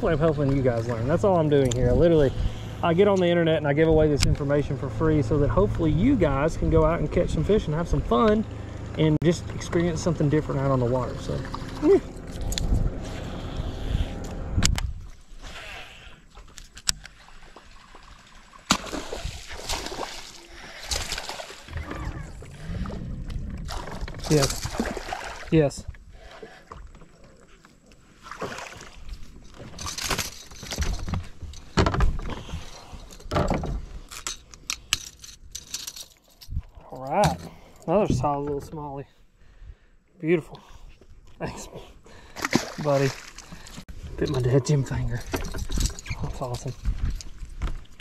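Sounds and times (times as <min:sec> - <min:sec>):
water sloshing and splashing: 0:00.0 - 0:08.4, 0:09.0 - 0:36.4, 0:42.1 - 0:48.0.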